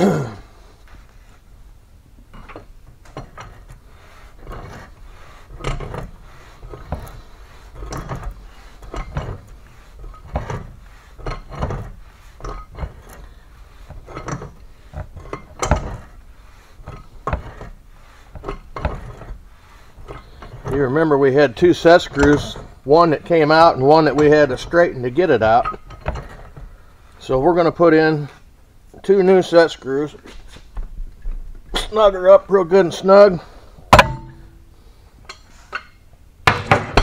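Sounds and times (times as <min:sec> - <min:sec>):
wrench clinking on metal: 0:14.1 - 0:14.6.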